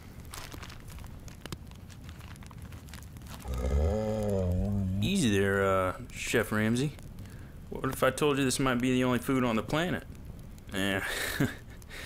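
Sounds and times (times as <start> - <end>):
food packet crinkling: 0.0 - 5.1
low steady humming: 3.2 - 7.8.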